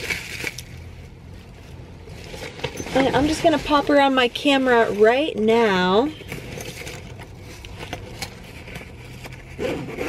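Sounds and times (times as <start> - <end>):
bubble wrap crinkling: 0.0 - 6.1
low steady rumble: 0.0 - 10.0.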